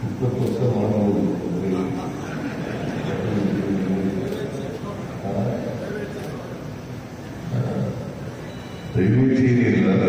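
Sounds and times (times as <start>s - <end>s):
man speaking over public address: 0.0s - 6.7s, 7.4s - 8.3s, 8.9s - 10.0s.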